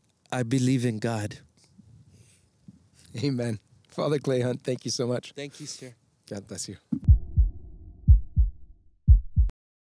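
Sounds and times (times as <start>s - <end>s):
deep bass thumps: 7.0s - 9.5s.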